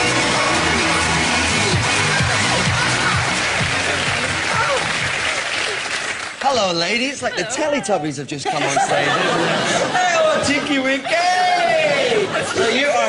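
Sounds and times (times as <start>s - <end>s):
upbeat music with steady beat: 0.0s - 5.3s
audience applause: 0.0s - 7.2s.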